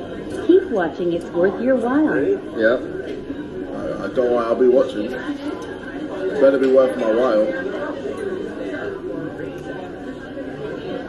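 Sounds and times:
murmur of voices in a restaurant: 0.0s - 11.0s.

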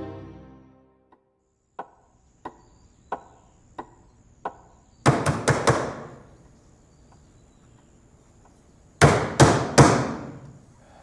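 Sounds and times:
sharp knocks: 1.8s - 6.2s, 9.0s - 10.4s.

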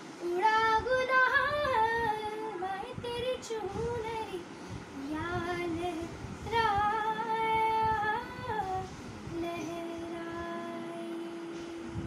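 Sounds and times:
girl singing unaccompanied: 0.2s - 11.8s.

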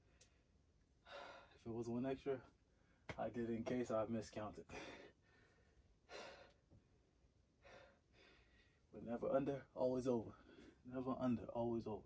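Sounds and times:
man sighing breaths: 1.0s - 1.6s, 4.7s - 6.6s.

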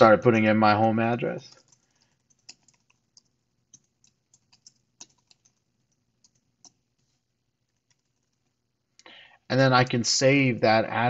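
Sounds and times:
faint keyboard typing: 1.2s - 10.2s.

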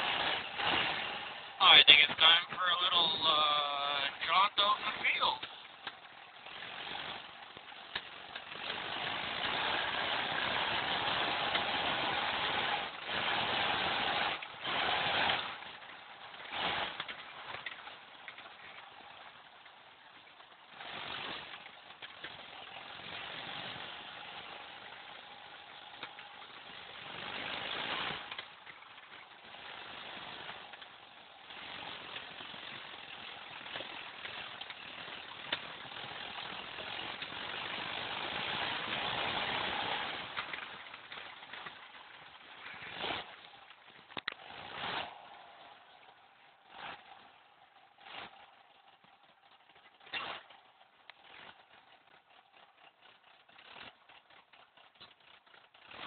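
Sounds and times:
car engine: 0.0s - 56.0s
wind and tyre noise: 0.0s - 56.0s.

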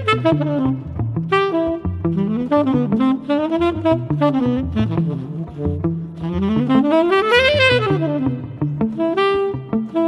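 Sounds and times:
bass: 0.0s - 10.0s
tenor saxophone: 0.0s - 10.0s.

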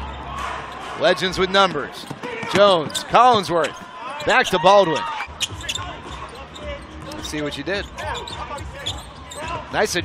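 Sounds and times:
basketball bouncing on court: 2.0s - 3.8s.

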